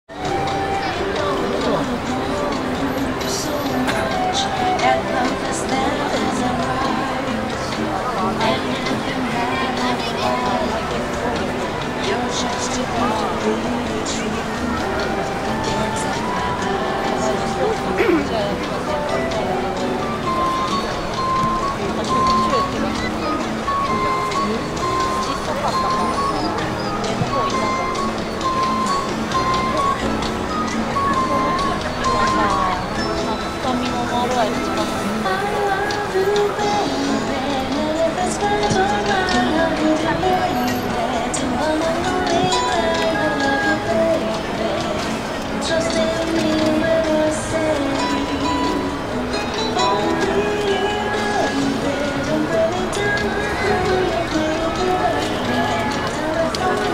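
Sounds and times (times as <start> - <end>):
crowd chattering: 0.1 - 56.9
music with long held notes: 0.1 - 56.9.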